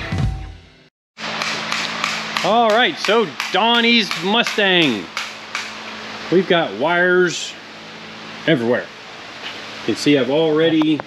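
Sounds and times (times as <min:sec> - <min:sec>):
low workshop hum: 0:00.6 - 0:11.0
man talking: 0:02.4 - 0:05.1, 0:06.3 - 0:07.6, 0:08.5 - 0:08.9, 0:09.8 - 0:11.0.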